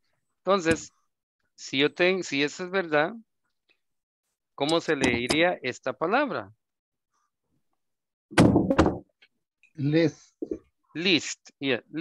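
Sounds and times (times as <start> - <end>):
loud thud: 8.3 - 9.1.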